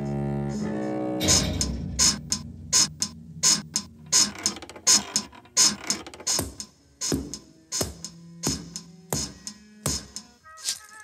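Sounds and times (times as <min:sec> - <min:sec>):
low held notes: 0:00.0 - 0:04.4
bedsprings squeaking: 0:01.2 - 0:10.2.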